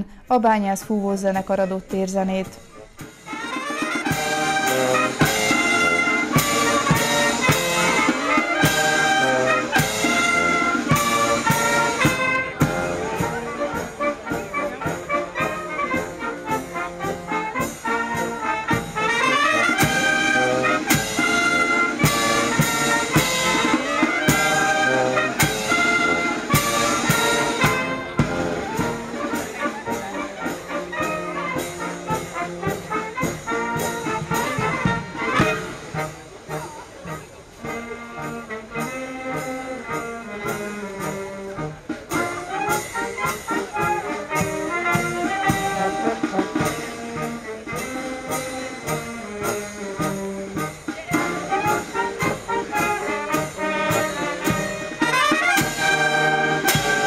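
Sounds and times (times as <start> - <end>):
wind band playing lively tune: 0.0 - 57.0.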